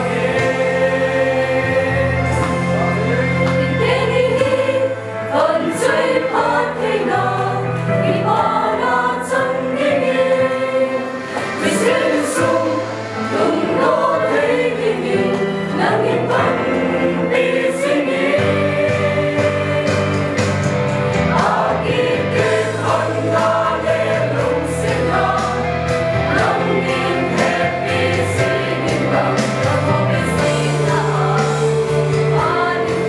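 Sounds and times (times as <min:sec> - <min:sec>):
mixed choir singing: 0:00.0 - 0:33.0.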